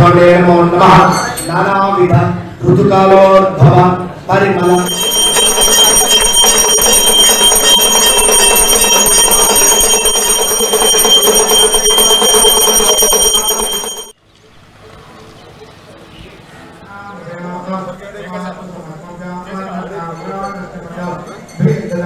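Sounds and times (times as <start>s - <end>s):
temple bells ringing rapidly: 4.6s - 14.2s.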